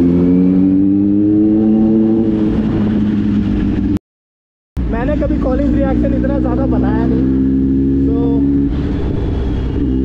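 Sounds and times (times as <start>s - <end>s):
motorcycle engine accelerating: 0.0s - 4.0s, 4.8s - 10.0s.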